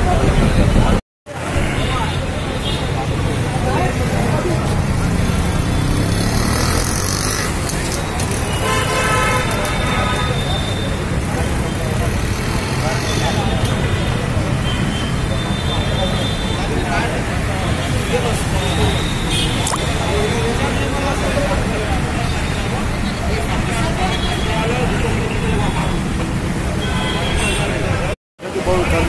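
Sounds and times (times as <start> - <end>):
crowd talking: 0.0 - 29.0
street traffic rumble: 0.0 - 29.0
vehicle horn: 8.5 - 10.8.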